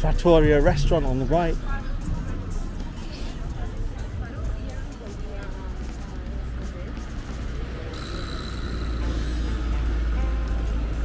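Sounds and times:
traffic low rumble: 0.0s - 11.0s
van passing: 0.0s - 11.0s.

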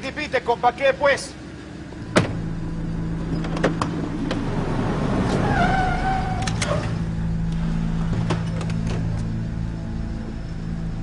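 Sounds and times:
car engines idling: 0.0s - 11.0s
car door shutting: 2.1s - 2.6s, 3.2s - 4.5s, 8.0s - 9.3s.

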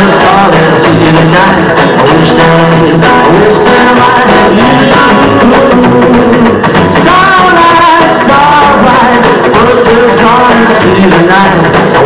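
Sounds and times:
rockabilly band playing: 0.0s - 12.0s.

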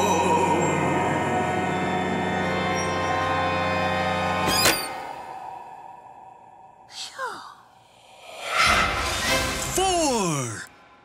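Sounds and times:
spooky cartoon music: 0.0s - 10.9s.

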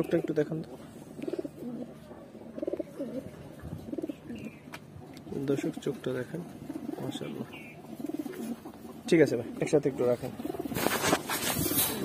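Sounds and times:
pigeons cooing: 0.0s - 12.0s
rustling: 10.4s - 12.0s.

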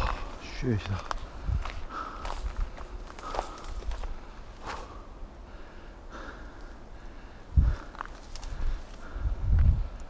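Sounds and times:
footsteps on stony ground: 0.0s - 5.1s, 7.6s - 10.0s
grass rustling: 0.0s - 10.0s.

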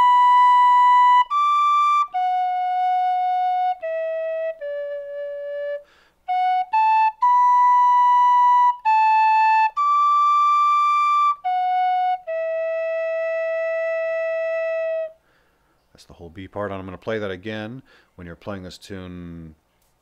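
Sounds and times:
tin whistle melody: 0.0s - 15.2s.

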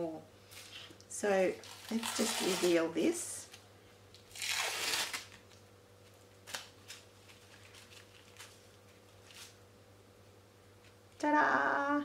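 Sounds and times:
plastic stencil peeling crackles: 1.5s - 9.6s.

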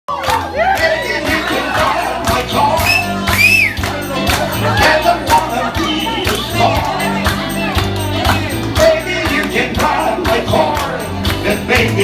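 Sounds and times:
crowd shouting and cheering: 0.1s - 12.0s
music with low bass line: 0.6s - 12.0s.

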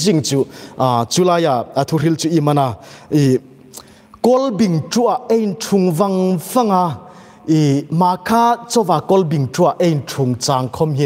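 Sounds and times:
man preaching into a microphone: 0.0s - 11.0s.

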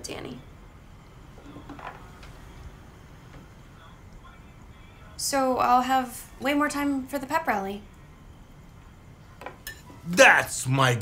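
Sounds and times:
cutlery clinking on plates: 9.4s - 10.0s.

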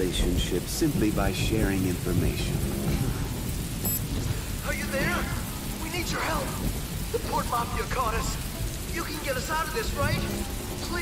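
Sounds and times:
low rumble of thunder: 0.0s - 11.0s
steady rain: 0.0s - 11.0s.

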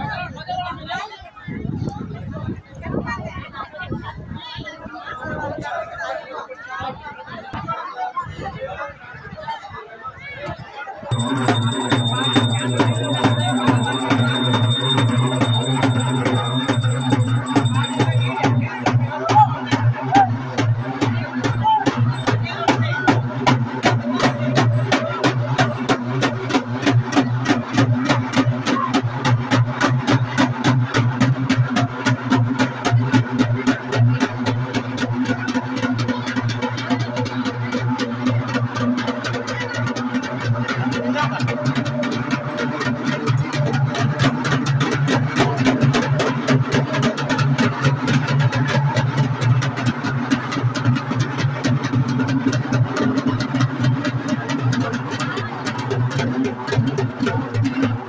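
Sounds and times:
crowd voices: 0.0s - 58.0s
fast even drumming: 11.1s - 29.7s.

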